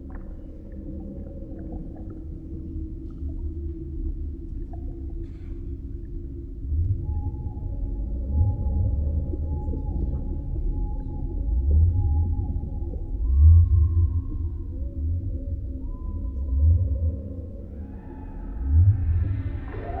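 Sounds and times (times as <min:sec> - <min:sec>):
deep rumble: 0:00.0 - 0:20.0.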